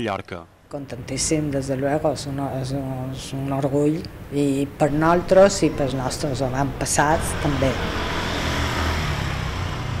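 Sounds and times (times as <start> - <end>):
road noise: 0.6 - 10.0
vehicle engine humming: 0.8 - 10.0.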